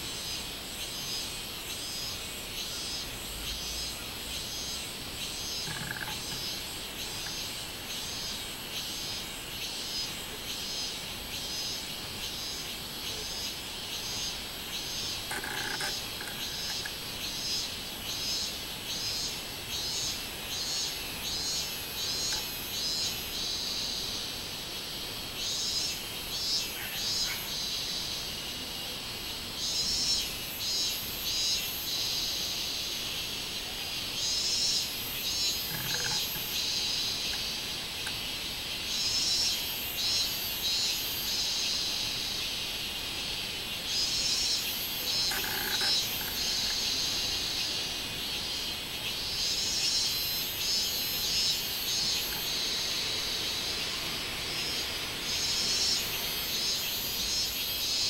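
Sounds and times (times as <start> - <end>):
cicadas singing: 0.0 - 58.0.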